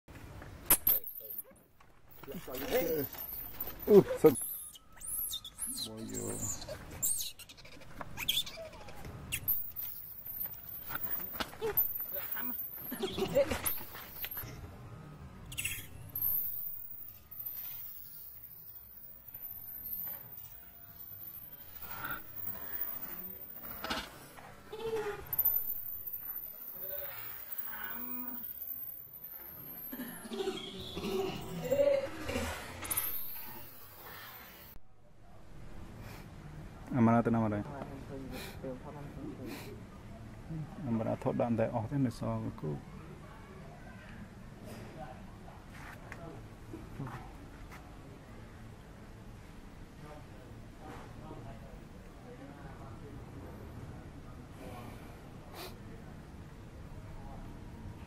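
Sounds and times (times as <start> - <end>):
baby monkey whimpering: 4.4 - 9.0.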